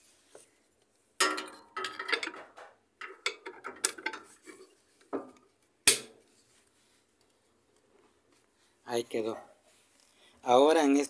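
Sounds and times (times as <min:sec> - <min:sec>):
metal clamps clanking and scraping: 0:01.2 - 0:06.1.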